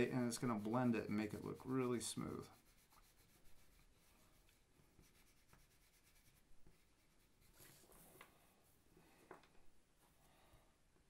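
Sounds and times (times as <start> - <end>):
pastel rubbing on paper: 0.0 - 8.1
paper rustle: 7.5 - 8.4.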